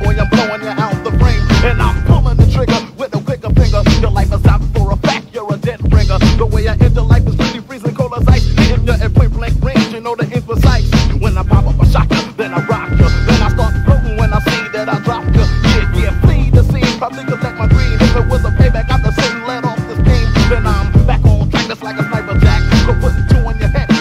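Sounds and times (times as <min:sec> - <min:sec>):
man rapping over bass beat: 0:00.0 - 0:24.0.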